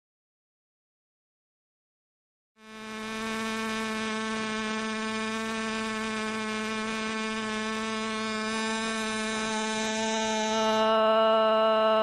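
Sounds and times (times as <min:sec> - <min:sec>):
steady buzzy tone: 0:02.6 - 0:12.0.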